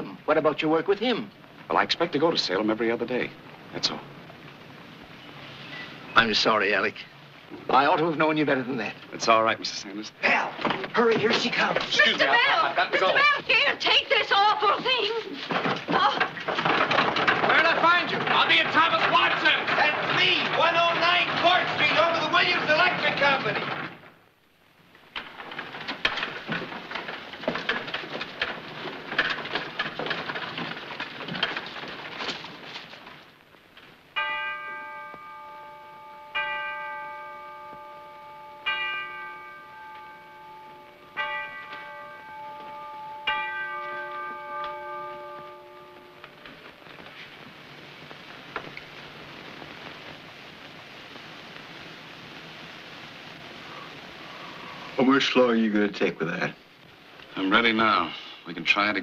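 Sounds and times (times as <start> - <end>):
rain falling: 0.0 - 59.0
large bell ringing: 17.3 - 23.7, 34.2 - 47.0.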